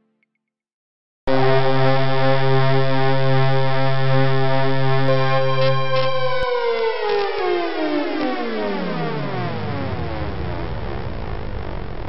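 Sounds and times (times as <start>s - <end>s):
synthesizer chord gliding down: 1.3s - 12.0s.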